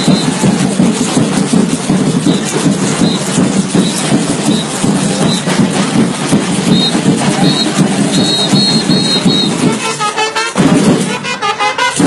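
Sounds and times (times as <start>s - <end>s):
high whistle: 0.0s - 0.4s, 6.7s - 9.6s
samba percussion: 0.0s - 12.0s
trumpet notes: 6.8s - 12.0s.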